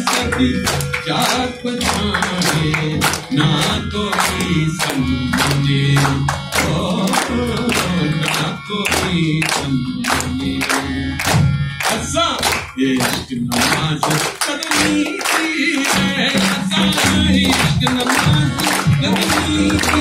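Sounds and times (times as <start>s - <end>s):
person singing: 0.0s - 10.9s, 11.8s - 20.0s
harmonium: 0.0s - 13.2s, 14.6s - 20.0s
people clapping along: 0.0s - 20.0s.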